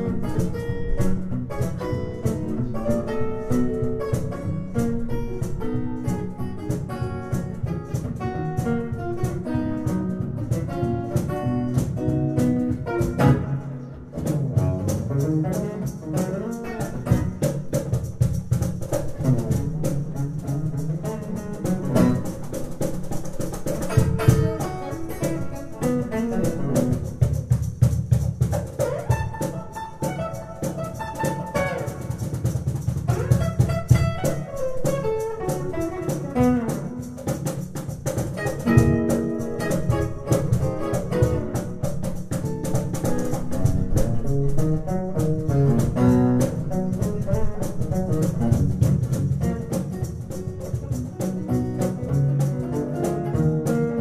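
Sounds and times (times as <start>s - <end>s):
cajon beat: 0.0s - 54.0s
fingerstyle acoustic guitar: 0.0s - 54.0s.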